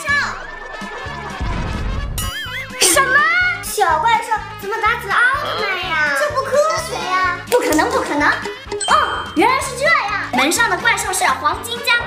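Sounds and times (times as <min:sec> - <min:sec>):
background music: 0:00.0 - 0:12.0
low rumbling blast: 0:01.3 - 0:02.2.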